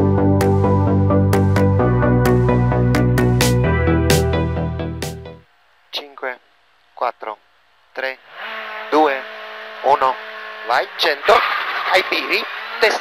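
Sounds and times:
rally car engine accelerating: 10.4 - 13.0.

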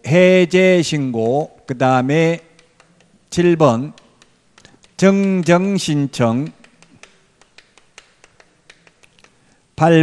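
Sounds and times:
chalk tapping on a blackboard: 1.1 - 9.4.

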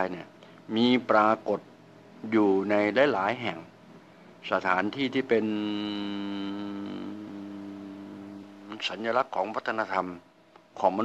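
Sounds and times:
man humming a long note: 5.3 - 8.8.

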